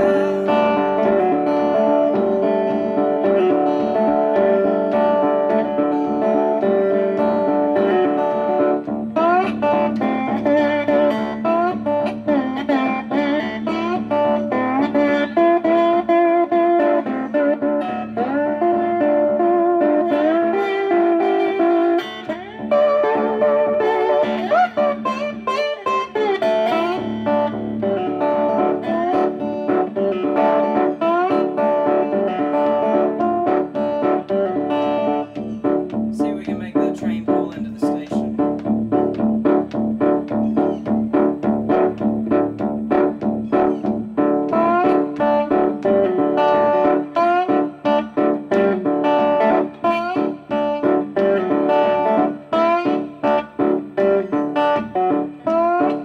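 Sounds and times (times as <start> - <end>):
slide electric guitar: 0.0 - 56.0.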